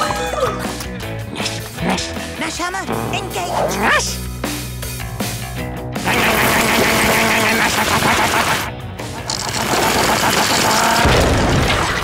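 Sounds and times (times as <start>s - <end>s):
background music: 0.0s - 12.0s
cartoon wall breaking clatter: 9.4s - 12.0s.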